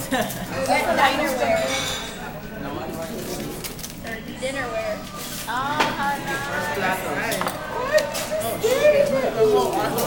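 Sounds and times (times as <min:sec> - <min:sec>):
quiet voices murmuring: 0:00.0 - 0:10.0.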